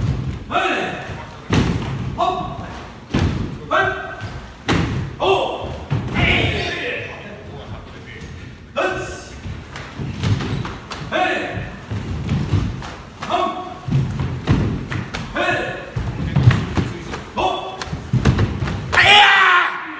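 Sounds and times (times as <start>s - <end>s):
bare feet thudding on wooden floor: 13.8s - 17.2s
person shouting: 18.9s - 19.9s.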